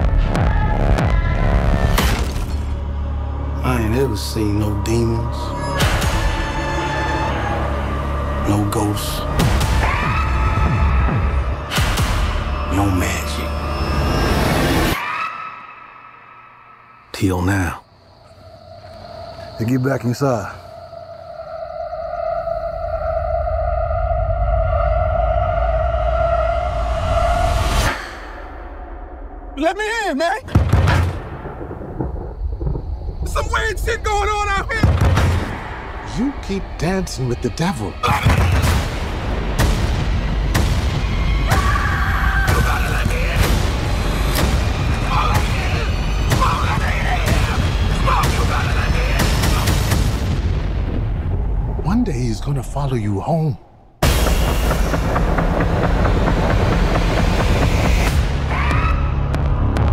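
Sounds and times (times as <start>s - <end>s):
music: 0.0s - 15.0s, 37.5s - 50.6s, 54.0s - 59.9s
deep low rumble: 31.2s - 41.3s.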